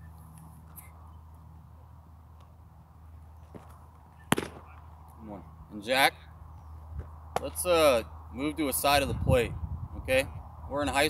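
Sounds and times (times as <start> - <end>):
baseball sharp crack: 3.5 - 4.9, 7.0 - 7.7.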